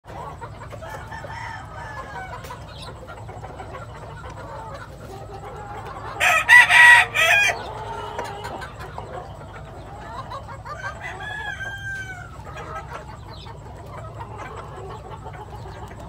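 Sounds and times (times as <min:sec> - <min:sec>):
loud rooster crow: 0:00.8 - 0:02.5, 0:06.2 - 0:08.1, 0:10.7 - 0:12.4.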